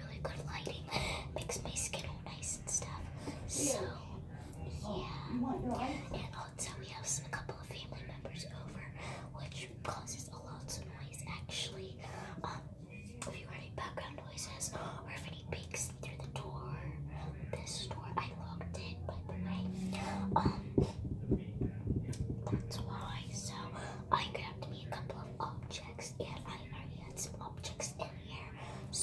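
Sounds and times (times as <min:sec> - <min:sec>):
girl whispering: 0:00.0 - 0:21.0, 0:22.4 - 0:29.0
low hum: 0:16.3 - 0:25.7.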